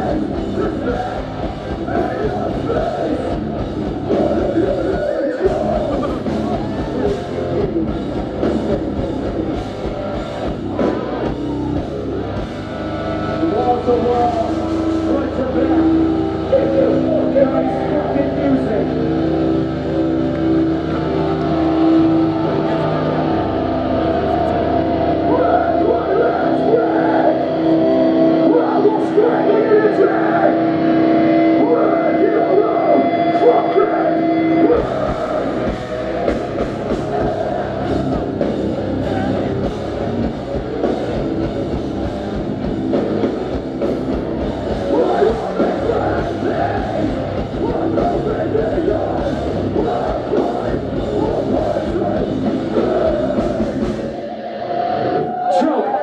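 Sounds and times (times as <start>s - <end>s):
voices singing: 0.0s - 11.9s, 13.4s - 56.0s
drums pounding: 0.0s - 18.1s, 34.7s - 54.3s
guitar chords ringing: 0.0s - 55.4s
live hardcore band: 0.0s - 56.0s.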